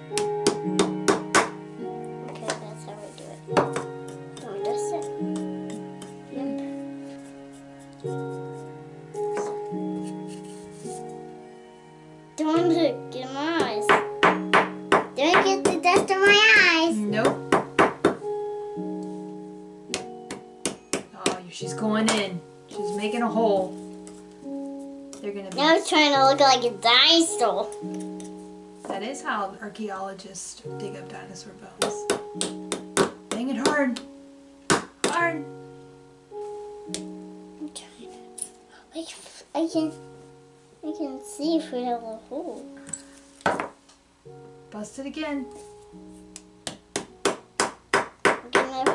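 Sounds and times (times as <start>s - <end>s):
background music of held notes: 0.0s - 48.9s.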